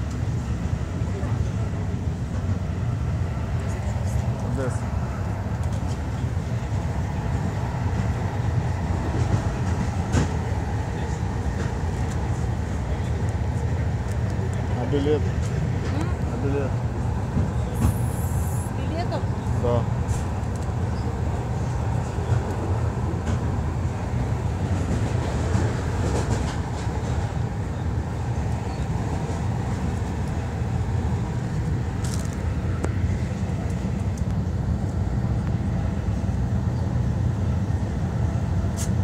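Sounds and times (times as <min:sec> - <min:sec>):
train rumbling inside carriage: 0:00.0 - 0:39.0.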